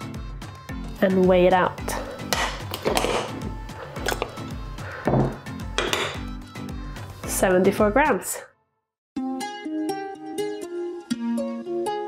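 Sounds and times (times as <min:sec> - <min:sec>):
background music with steady beat: 0:00.0 - 0:08.0
spoon clinking on glass: 0:05.8 - 0:06.2.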